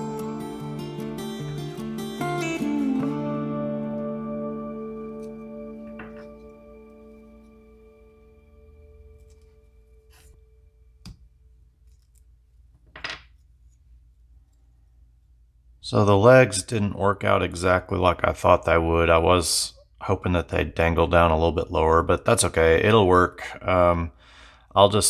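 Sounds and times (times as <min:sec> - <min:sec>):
acoustic guitar music: 0:00.0 - 0:09.6.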